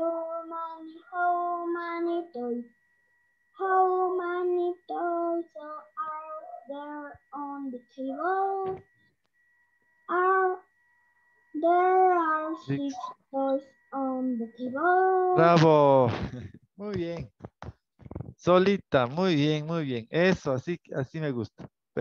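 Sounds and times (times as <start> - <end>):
girl singing unaccompanied: 0.0 - 2.8, 3.6 - 8.9, 10.1 - 10.7, 11.6 - 15.6.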